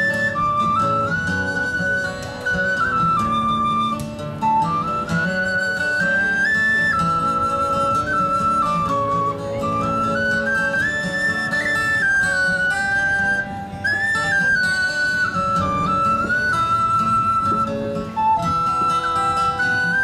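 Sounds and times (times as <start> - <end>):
acoustic guitar accompaniment: 0.0 - 20.0
flute melody: 0.0 - 20.0.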